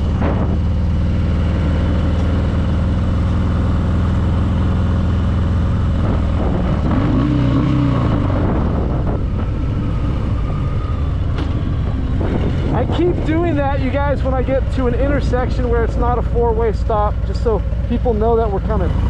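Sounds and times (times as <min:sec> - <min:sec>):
motorcycle engine cruising: 0:00.0 - 0:19.0.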